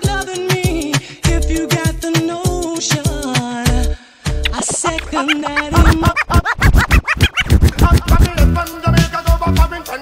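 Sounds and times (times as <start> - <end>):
loud beat: 2.9 - 9.9
dj scratching: 4.4 - 8.8.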